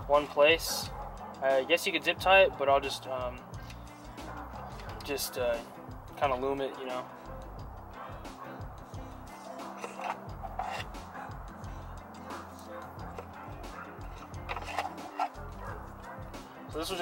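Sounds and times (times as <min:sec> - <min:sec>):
background music with bass line: 0:00.0 - 0:17.0
electrical tape handling noises: 0:04.7 - 0:05.2, 0:09.6 - 0:11.0, 0:13.0 - 0:13.4, 0:14.0 - 0:15.5.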